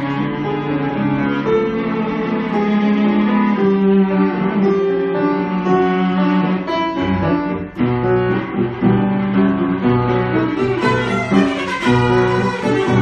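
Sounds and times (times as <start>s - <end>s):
cello bowed notes: 0.0s - 13.0s
piano chords and runs: 0.0s - 13.0s.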